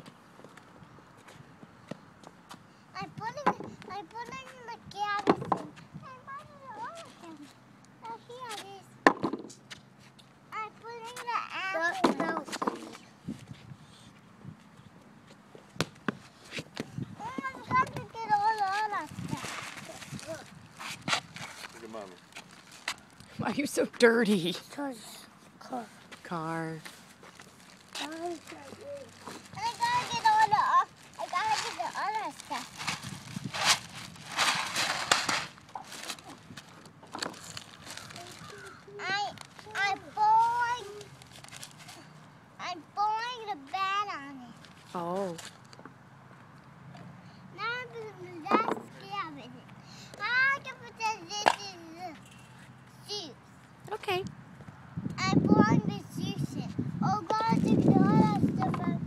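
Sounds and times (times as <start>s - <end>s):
young child talking: 2.9s - 9.0s, 10.5s - 13.1s, 17.1s - 20.6s, 28.0s - 32.8s, 38.0s - 41.2s, 42.6s - 45.4s, 47.5s - 52.2s, 53.0s - 54.3s, 55.2s - 59.0s
child's high-pitched vocalizing: 28.0s - 32.3s, 38.0s - 40.0s.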